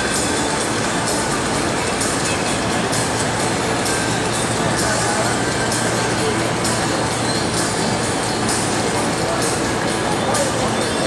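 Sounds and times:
loud noisy rumble: 0.0s - 11.0s.

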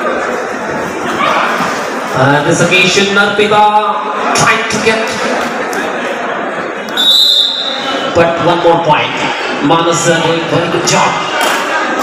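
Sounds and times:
crowd noise: 0.0s - 12.0s
referee's whistle: 6.9s - 7.9s.

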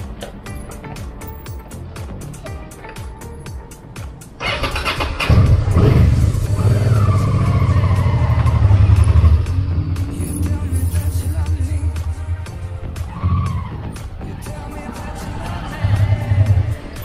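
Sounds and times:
music playing: 0.0s - 17.0s
motorcycle engine running: 4.4s - 12.9s.

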